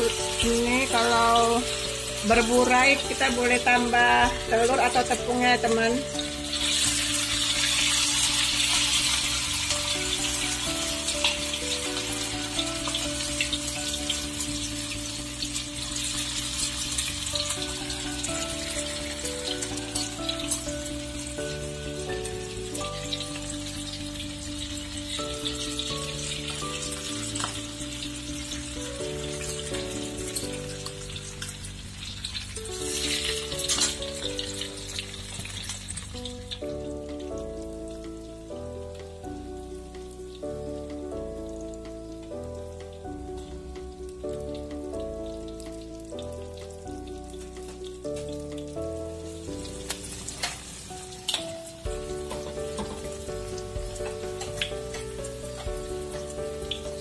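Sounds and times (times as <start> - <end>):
background music: 0.0 - 57.0
fritters sizzling in hot oil: 0.0 - 57.0.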